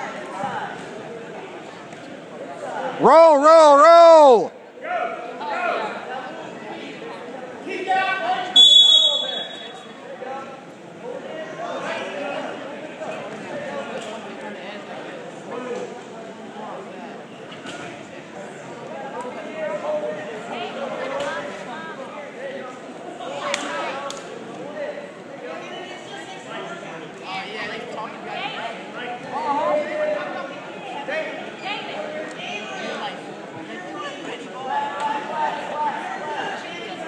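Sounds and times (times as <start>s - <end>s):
crowd chatter in echoing gym: 0.0s - 37.0s
referee's whistle blast: 8.6s - 9.9s.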